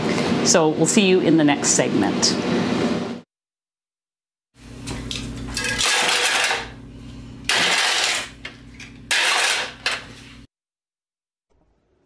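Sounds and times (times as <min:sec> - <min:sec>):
metal kitchenware clattering: 0:05.5 - 0:06.7
steady low hum: 0:06.6 - 0:09.1.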